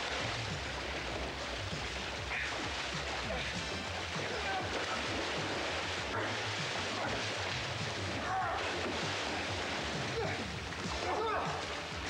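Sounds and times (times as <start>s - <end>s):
water splashing and churning: 0.0s - 12.0s.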